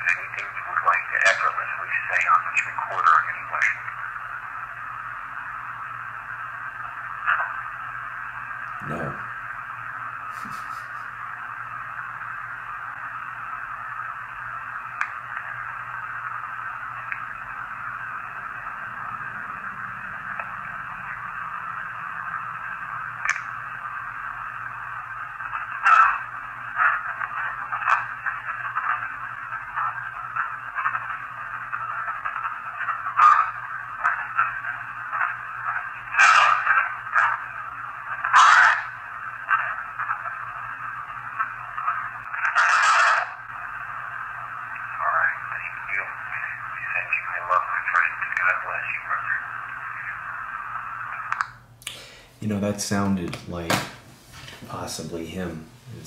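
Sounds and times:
radio static hiss: 0:00.0 - 0:56.0.

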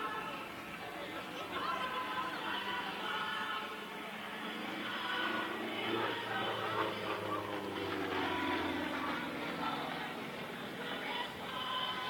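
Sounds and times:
radial engine and propeller: 0:00.0 - 0:12.0.

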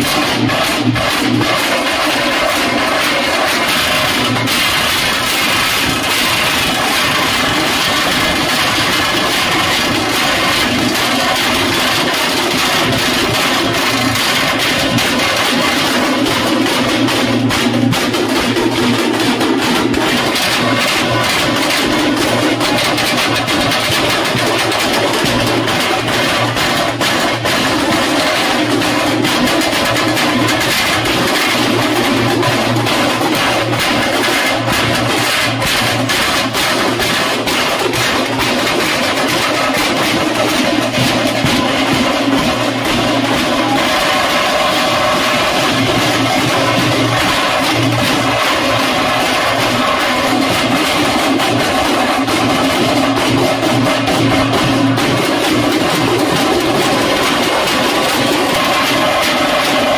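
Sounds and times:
drums beaten rapidly with sticks: 0:00.0 - 0:59.9.

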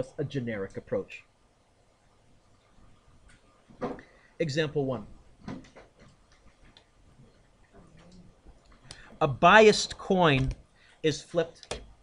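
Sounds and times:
faint irregular clicks: 0:05.7 - 0:09.1.

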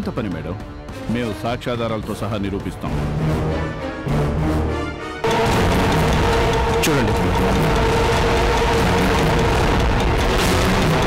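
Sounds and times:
dramatic background score drone: 0:00.0 - 0:11.0.

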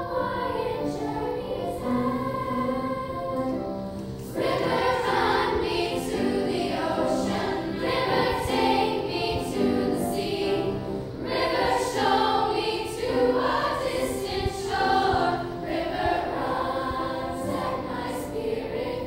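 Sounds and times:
girls' choir singing: 0:00.0 - 0:19.0.

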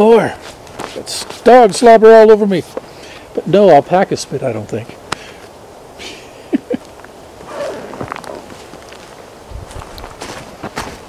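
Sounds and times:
footsteps on pine needles: 0:00.4 - 0:01.6, 0:07.4 - 0:11.0.

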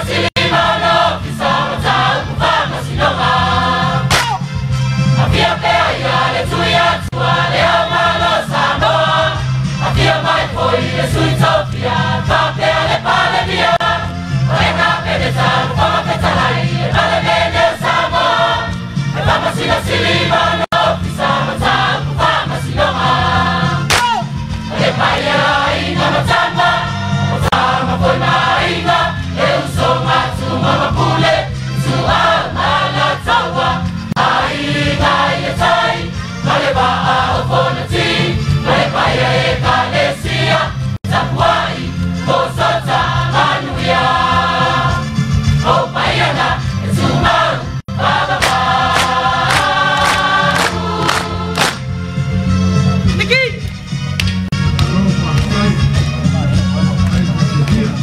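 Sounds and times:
choir singing a hymn: 0:00.0 - 0:04.1, 0:05.0 - 0:23.9, 0:24.7 - 0:52.0
instrumental accompaniment: 0:48.0 - 0:57.6.

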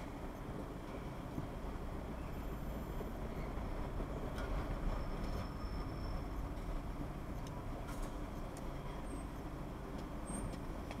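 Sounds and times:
van engine low rumble: 0:00.0 - 0:11.0.

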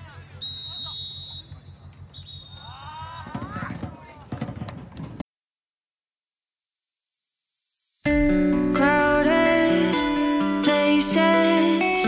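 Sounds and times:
referee's whistle blasts: 0:00.2 - 0:02.9.

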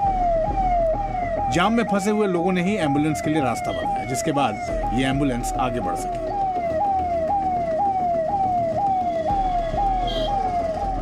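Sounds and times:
ambulance siren: 0:00.0 - 0:11.0.

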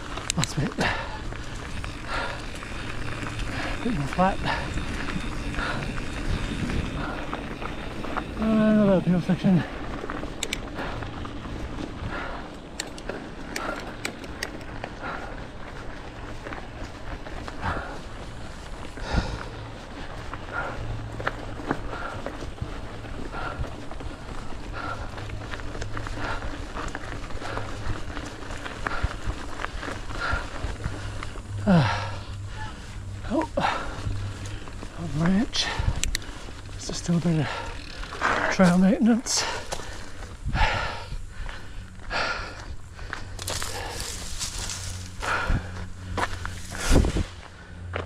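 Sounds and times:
bike clicks and rattles: 0:00.0 - 0:48.0
bike tyres on dirt: 0:00.0 - 0:48.0
rider breathing hard: 0:00.0 - 0:48.0.

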